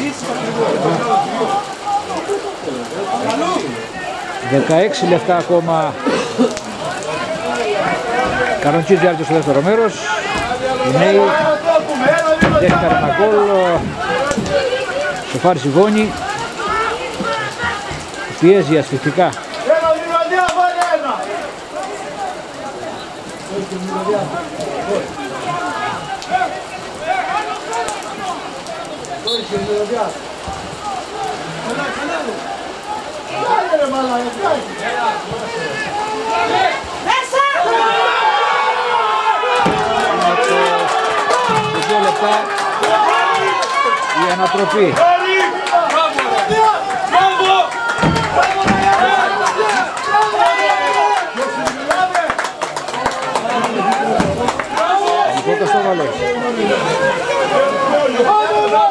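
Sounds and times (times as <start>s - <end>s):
players shouting: 0.0s - 58.9s
steady rain falling: 0.0s - 58.9s.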